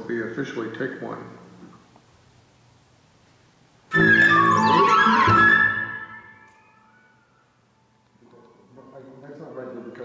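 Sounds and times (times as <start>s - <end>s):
chamber ensemble with sliding pitches: 3.9s - 7.5s.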